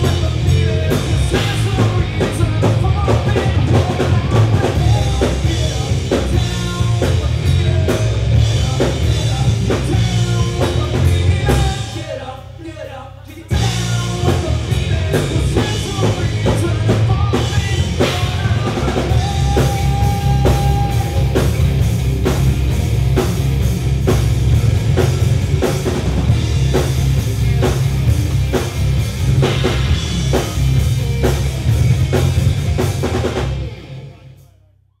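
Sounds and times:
rock band playing: 0.0 - 34.5
hard-hit drum strokes: 13.6 - 34.0.

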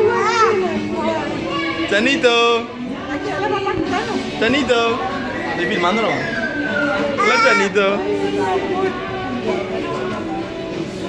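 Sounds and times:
adults chattering: 0.0 - 11.0
toddler crying: 7.1 - 7.8.

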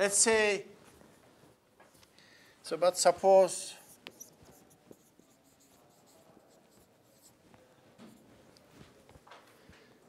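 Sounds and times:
marker scratching on whiteboard: 3.1 - 9.2.

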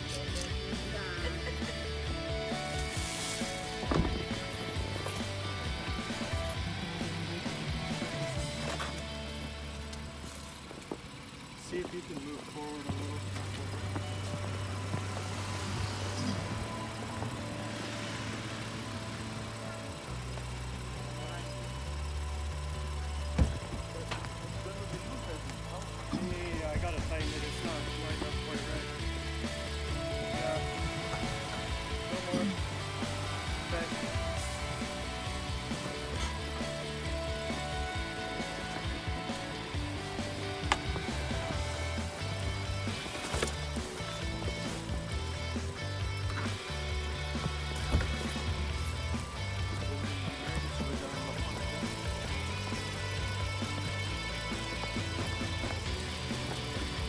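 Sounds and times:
background music with bass line: 0.0 - 10.6, 12.6 - 57.0.

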